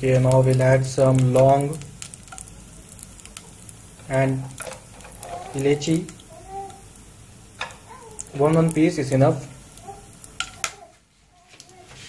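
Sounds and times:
spices sizzling in hot oil: 0.0s - 12.0s.

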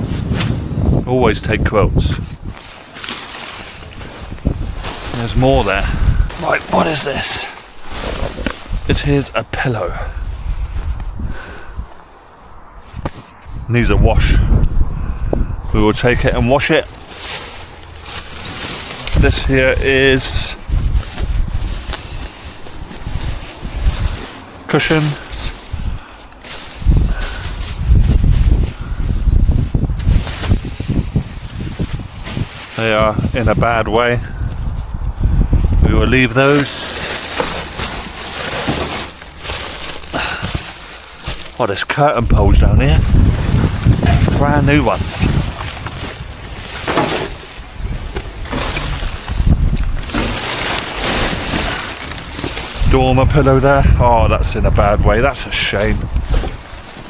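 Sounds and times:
rustling of plastic bags: 0.0s - 13.0s, 15.6s - 57.0s
low rumbling buffeting on microphone: 0.0s - 41.6s, 42.2s - 57.0s.

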